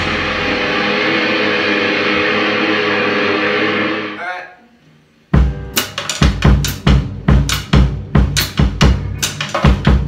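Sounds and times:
band holding sustained chord: 0:00.0 - 0:04.2
cymbal wash: 0:00.0 - 0:04.2.

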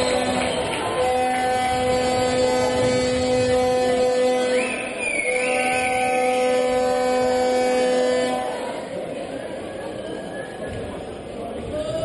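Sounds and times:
horn long steady note: 0:00.0 - 0:09.4.

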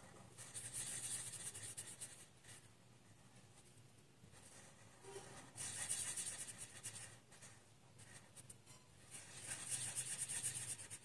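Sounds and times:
marker pen scribbling on paper: 0:00.0 - 0:02.7, 0:04.3 - 0:11.0.

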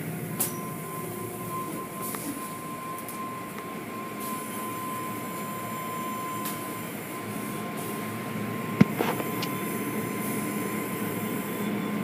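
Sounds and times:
thin steady whine: 0:00.1 - 0:12.0
car wash spray and brushing: 0:08.8 - 0:09.5.

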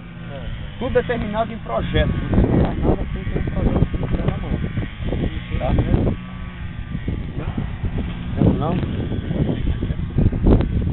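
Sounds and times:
steady low rumble: 0:00.0 - 0:10.9
people talking: 0:00.3 - 0:06.2, 0:08.3 - 0:10.4.

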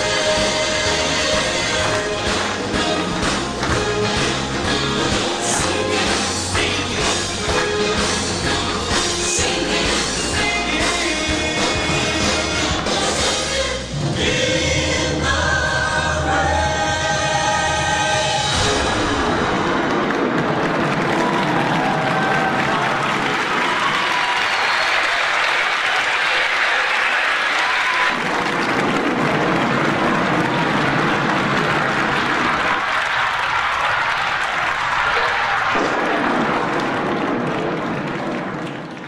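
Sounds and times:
audience applauding: 0:18.5 - 0:39.0.

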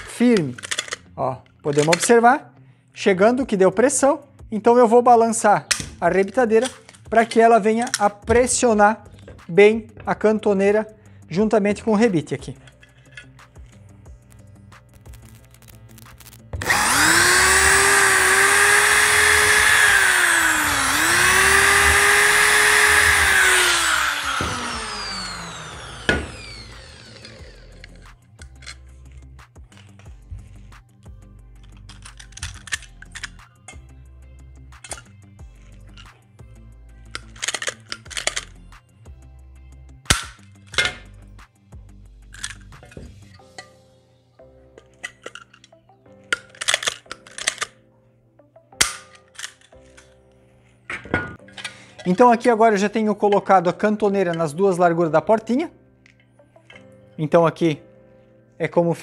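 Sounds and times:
metal parts clinking: 0:00.0 - 0:02.2, 0:12.5 - 0:13.8, 0:31.6 - 0:33.8, 0:34.8 - 0:35.1, 0:37.1 - 0:38.6, 0:44.8 - 0:47.8, 0:48.8 - 0:50.2
electric drill whining: 0:16.2 - 0:28.3.

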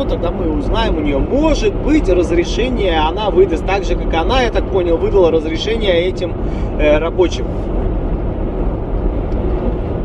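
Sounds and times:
car road noise rumble: 0:00.0 - 0:10.0.

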